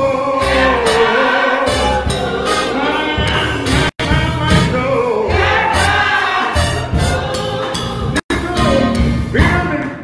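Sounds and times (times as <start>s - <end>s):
gospel choir singing: 0.0s - 9.1s.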